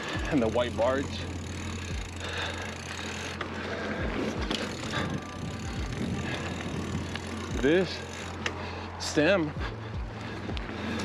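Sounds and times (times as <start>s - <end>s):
background music with low drone: 0.0s - 11.0s
bike tyres rolling over dirt: 0.0s - 11.0s.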